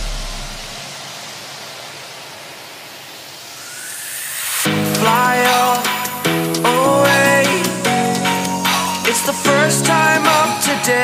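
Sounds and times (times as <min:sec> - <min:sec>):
low bass note: 0:00.0 - 0:00.8
rising hiss-like noise sweep: 0:00.0 - 0:10.4.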